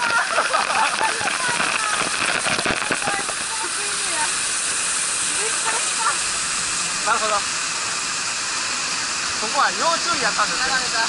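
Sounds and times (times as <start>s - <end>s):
water pouring and splashing: 0.0s - 11.0s.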